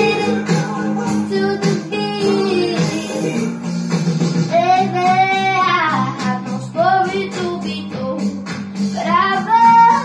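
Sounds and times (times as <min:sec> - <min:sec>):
girl singing pop song: 0:00.0 - 0:03.7, 0:04.4 - 0:10.0
guitar accompaniment: 0:00.0 - 0:10.0.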